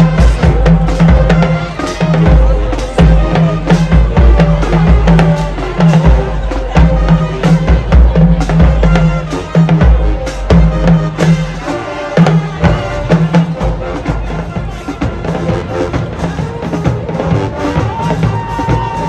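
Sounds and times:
marching band brass and percussion: 0:00.0 - 0:19.0.

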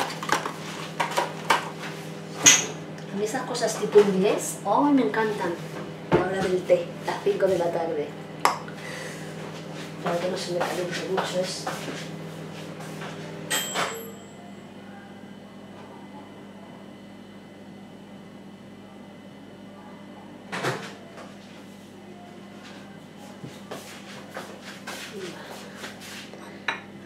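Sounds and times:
steady low background hum: 0:00.0 - 0:27.0.

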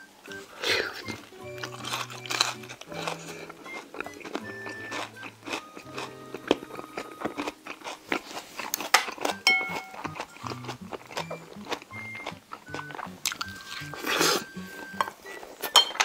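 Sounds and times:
light playful background music: 0:00.0 - 0:16.0
person chewing crunchily: 0:00.3 - 0:15.7.

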